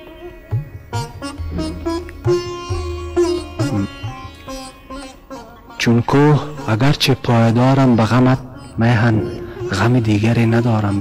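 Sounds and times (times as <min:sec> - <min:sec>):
plucked string melody: 0:00.0 - 0:11.0.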